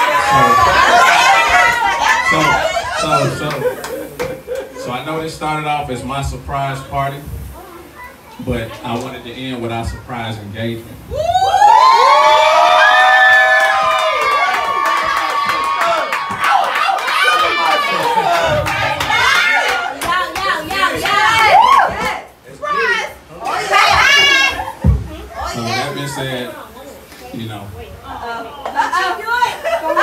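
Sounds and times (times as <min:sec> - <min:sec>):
crowd screaming and cheering: 0:00.0 - 0:03.8, 0:11.1 - 0:20.0
high-pitched shriek of excitement: 0:11.1 - 0:18.0.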